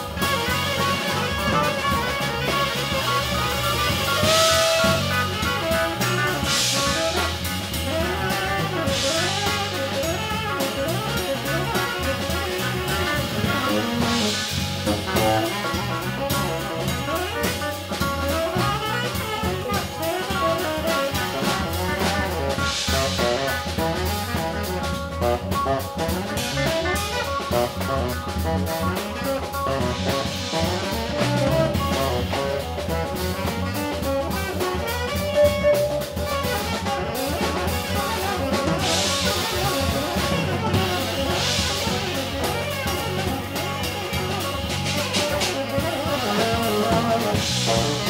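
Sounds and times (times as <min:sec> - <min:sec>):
live jazz-rock band: 0:00.0 - 0:48.0
saxophone playing: 0:00.0 - 0:48.0.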